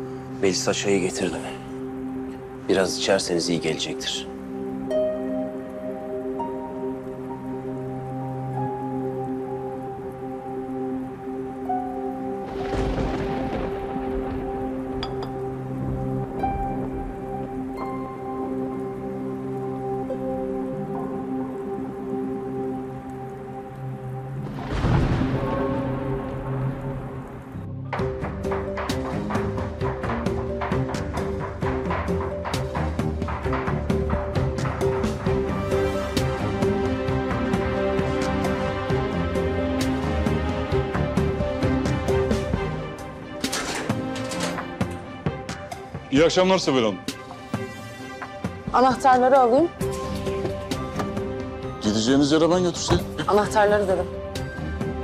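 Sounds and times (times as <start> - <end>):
clicking percussive beat: 27.9 - 35.5.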